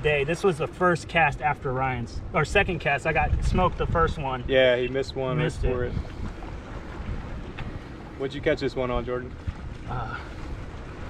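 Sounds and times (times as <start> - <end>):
water alongside a boat: 0.0 - 11.0
wind on microphone: 3.2 - 4.6, 5.4 - 7.9.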